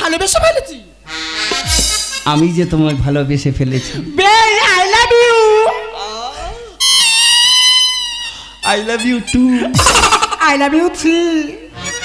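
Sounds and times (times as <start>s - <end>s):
sustained instrumental note: 1.1s - 2.8s
man's voice: 1.7s - 4.6s, 8.6s - 11.4s.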